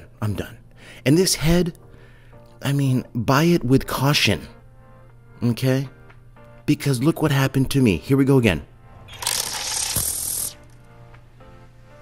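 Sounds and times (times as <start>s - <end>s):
faint background music: 0.0s - 12.0s
string trimmer line spinning: 9.1s - 10.8s.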